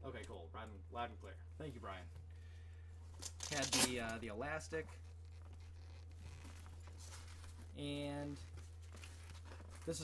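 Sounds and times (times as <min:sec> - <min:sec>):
rustling of straps and fabric: 0:04.7 - 0:10.0.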